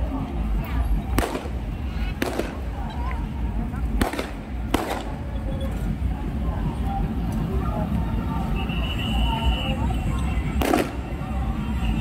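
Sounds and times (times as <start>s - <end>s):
crowd chatter: 0.0s - 12.0s
firecracker bangs: 1.1s - 1.6s, 2.2s - 2.7s, 4.0s - 5.1s, 10.6s - 11.1s.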